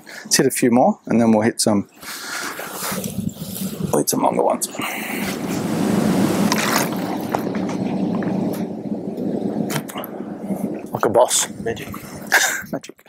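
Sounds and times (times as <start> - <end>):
loud rushing noise: 2.5 - 12.6.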